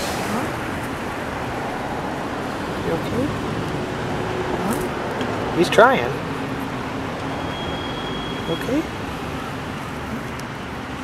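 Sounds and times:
road traffic passing: 0.0 - 11.0.

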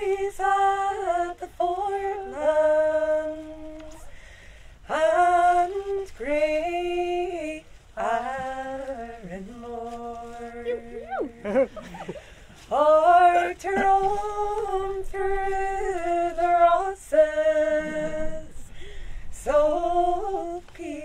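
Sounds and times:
women singing unaccompanied: 0.0 - 4.2, 4.8 - 12.0, 12.6 - 21.0.

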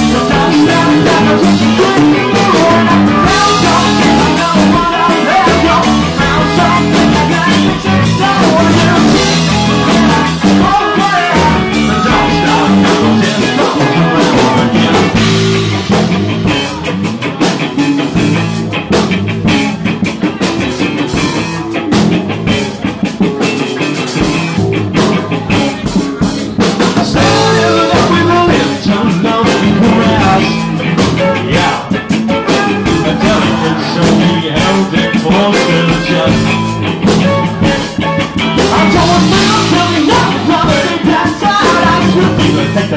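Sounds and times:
drums: 0.0 - 42.9
guitar: 0.0 - 42.9
live rock band playing: 0.0 - 42.9.

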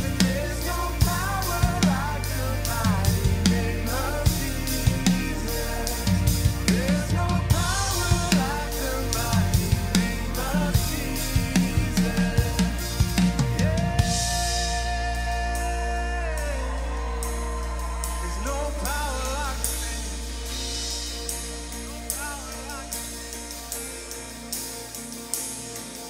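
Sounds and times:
drum kit rock beat: 0.0 - 26.0
rock band recording: 0.0 - 26.0.

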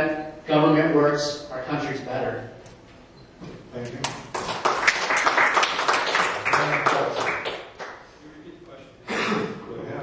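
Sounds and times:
audience applause: 4.3 - 8.0.

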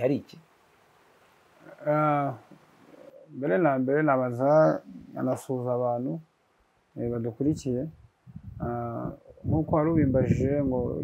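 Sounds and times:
man speaking slowly: 1.6 - 2.5, 3.2 - 6.3, 8.6 - 11.0.

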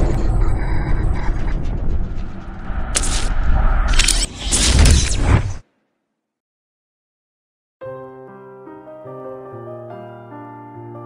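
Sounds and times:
deep rumble: 0.0 - 5.6.

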